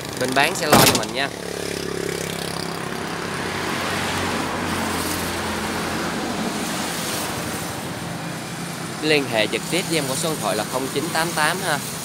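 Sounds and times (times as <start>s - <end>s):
vehicle passing by: 0.0s - 7.9s.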